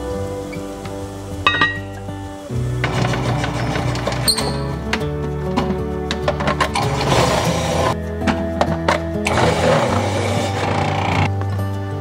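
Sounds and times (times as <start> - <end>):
background music: 0.0 - 12.0
food processor shredding potatoes: 6.7 - 7.9, 9.3 - 11.3.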